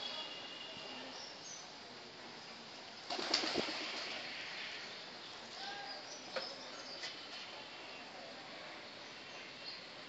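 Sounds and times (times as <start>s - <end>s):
pigeon wings flapping: 3.1s - 4.2s.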